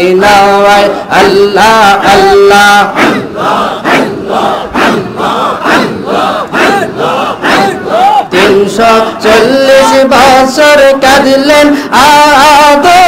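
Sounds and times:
crowd of men chanting in unison: 0.0s - 13.0s.

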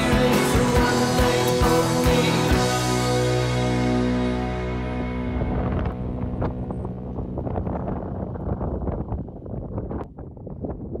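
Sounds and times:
background music: 0.0s - 7.6s
wind buffeting microphone: 5.0s - 11.0s.

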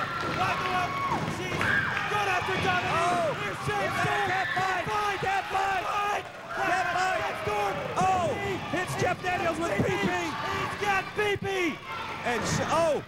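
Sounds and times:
excited voices shouting: 0.0s - 13.0s.

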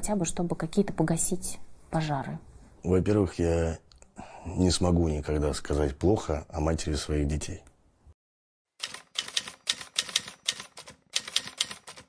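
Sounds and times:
typewriter keys clacking: 8.8s - 12.0s.

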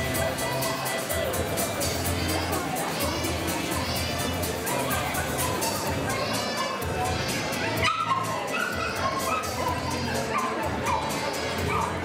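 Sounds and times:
background music with steady beat: 0.0s - 12.0s
dogs barking and yipping: 4.7s - 12.0s.

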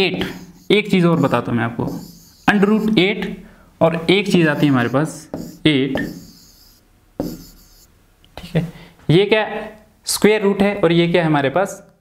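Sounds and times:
marker pen writing on whiteboard: 0.0s - 3.0s, 4.3s - 7.9s
sharp tap: 5.3s - 6.2s.

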